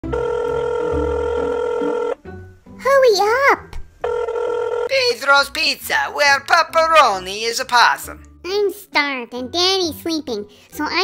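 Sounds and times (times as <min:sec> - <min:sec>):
telephone ringing tone: 0:00.0 - 0:02.2, 0:04.0 - 0:04.9.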